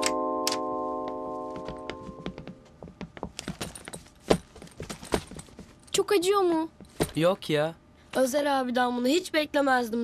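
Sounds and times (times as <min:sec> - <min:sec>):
footsteps on wooden floor: 0:01.1 - 0:05.8.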